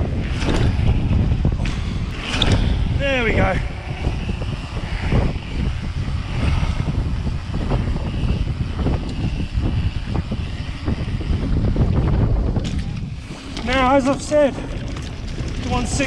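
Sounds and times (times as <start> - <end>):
bike knocks and rattles: 0.0 - 16.0
bike tyres rumbling on tarmac: 0.0 - 16.0
wind buffeting a microphone: 0.0 - 16.0.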